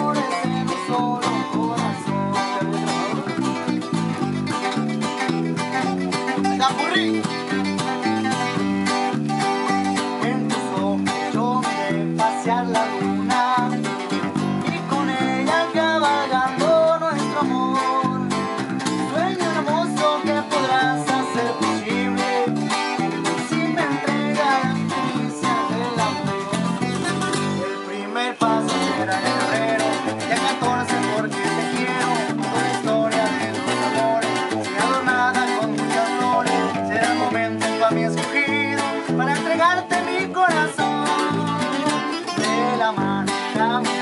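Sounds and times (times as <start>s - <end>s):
acoustic guitars playing: 0.0s - 44.0s.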